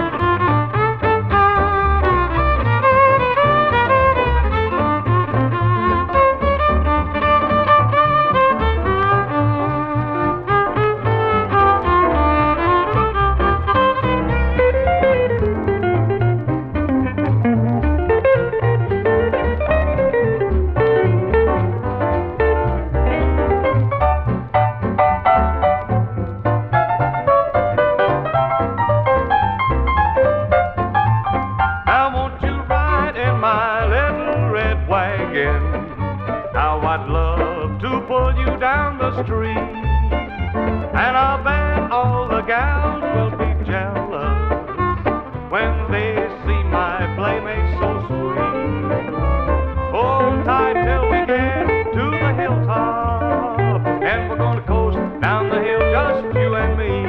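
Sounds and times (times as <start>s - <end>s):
electric guitar: 0.0s - 57.0s
fiddle: 0.0s - 57.0s
steady bass beat: 0.0s - 57.0s.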